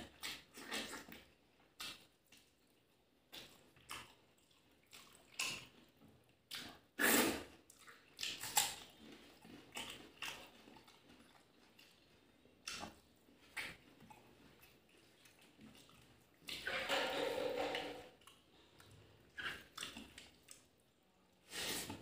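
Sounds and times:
person chewing food: 0:00.0 - 0:22.0.

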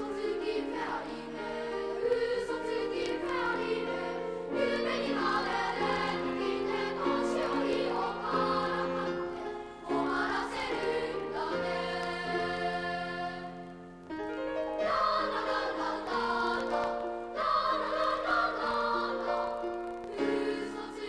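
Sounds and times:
boys' choir singing: 0:00.0 - 0:13.6, 0:14.8 - 0:21.0.

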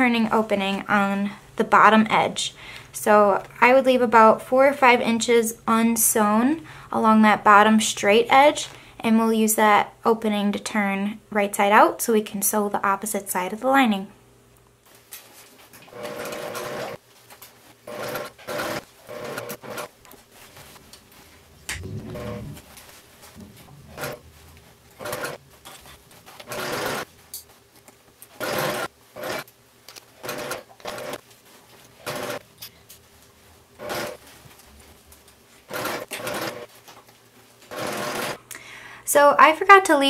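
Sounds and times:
sewing machine stitching: 0:15.9 - 0:17.0, 0:17.8 - 0:19.9, 0:21.8 - 0:22.6, 0:23.4 - 0:24.2, 0:24.9 - 0:27.1, 0:28.4 - 0:29.5, 0:30.2 - 0:31.2, 0:32.0 - 0:32.4, 0:33.8 - 0:34.2, 0:35.7 - 0:36.7, 0:37.7 - 0:38.4.

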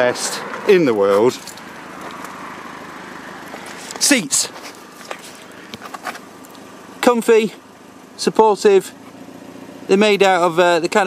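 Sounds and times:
car engine idling faintly: 0:00.0 - 0:11.0.

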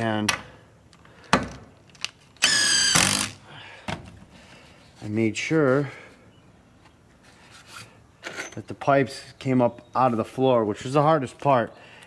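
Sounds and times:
impact driver whining: 0:02.4 - 0:03.4.

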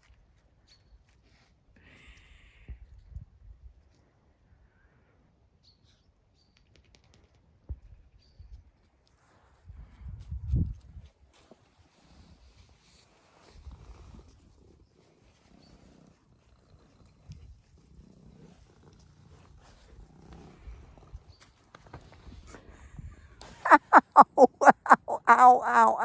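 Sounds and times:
cat purring faintly: 0:13.4 - 0:22.8.

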